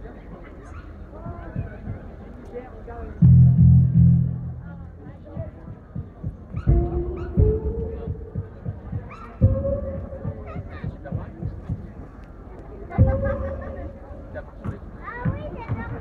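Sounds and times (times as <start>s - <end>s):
crowd voices: 0.0s - 16.0s
held musical note: 3.2s - 5.2s
deep booming hits: 3.2s - 11.9s.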